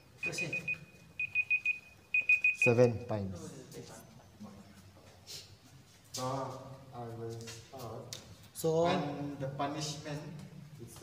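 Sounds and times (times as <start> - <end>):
high timer beeps: 0.0 - 3.0.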